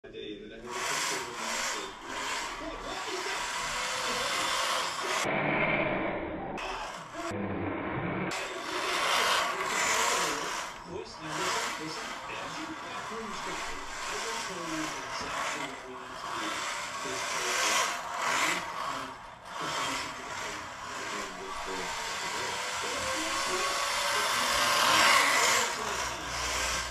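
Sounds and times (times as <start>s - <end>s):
rc car motor whirring: 0.5s - 5.9s, 6.6s - 7.4s, 8.3s - 26.9s
tyres sliding on wooden floor: 0.6s - 5.3s, 8.3s - 26.9s.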